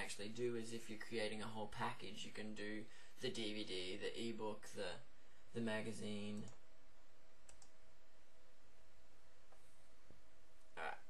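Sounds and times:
faint steady hum: 0:00.0 - 0:11.0
computer mouse clicks: 0:07.4 - 0:07.8.

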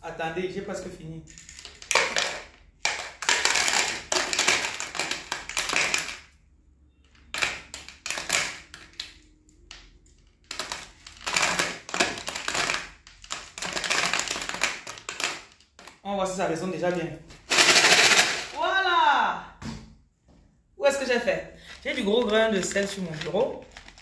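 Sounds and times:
shaker rattling: 0:17.4 - 0:18.6.

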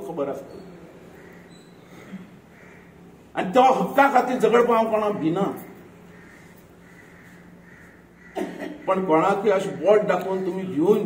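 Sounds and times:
faint bird call: 0:00.5 - 0:03.2, 0:05.6 - 0:08.9.

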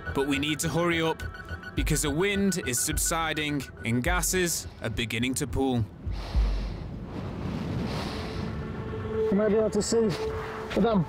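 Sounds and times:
wind-like noise wash: 0:05.7 - 0:10.6.

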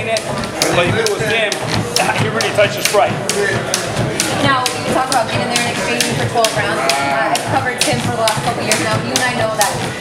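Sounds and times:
jump rope slapping floor: 0:00.0 - 0:10.0
voices talking: 0:00.0 - 0:10.0.

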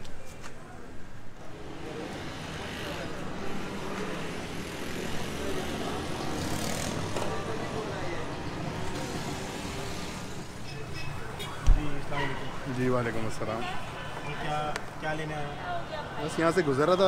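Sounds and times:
voices talking: 0:00.0 - 0:17.0.

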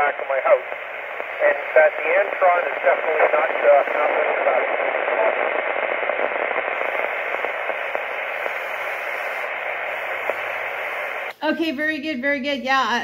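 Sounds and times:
radio static hiss: 0:00.0 - 0:13.0.

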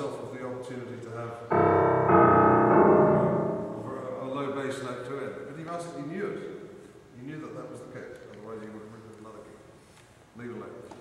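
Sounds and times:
grand piano chords ringing: 0:01.5 - 0:04.7.

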